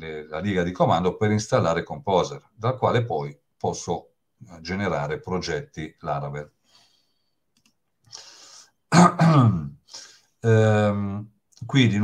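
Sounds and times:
faint breath: 0:06.6 - 0:08.8, 0:09.8 - 0:10.4
man coughing: 0:08.9 - 0:09.7.

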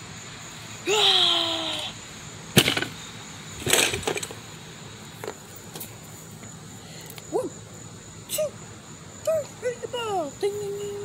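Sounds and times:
folding chair clattering hit: 0:02.6 - 0:03.0, 0:03.6 - 0:04.3.

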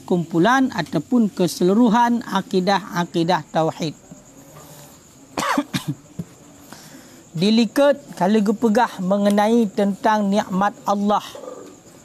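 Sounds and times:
man coughing: 0:05.4 - 0:06.1.

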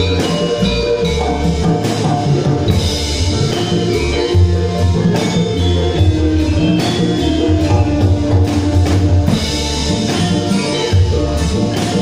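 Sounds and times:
live band with hand drums: 0:00.0 - 0:12.0.

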